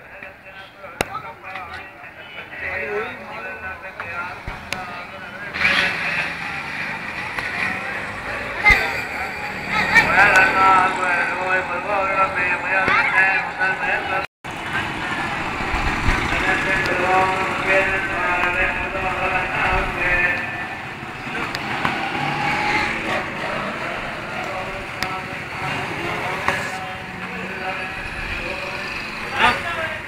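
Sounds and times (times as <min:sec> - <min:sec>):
crowd voices: 0:00.0 - 0:30.0
road traffic: 0:00.0 - 0:30.0.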